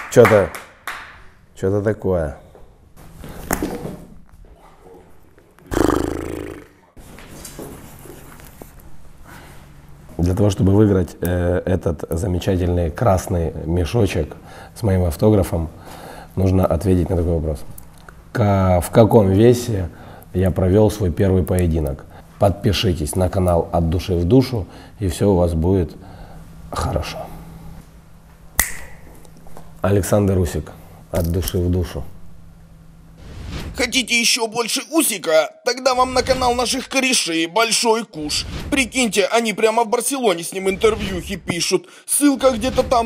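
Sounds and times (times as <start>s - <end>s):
sharp snap-like click: 28.6s - 29.0s.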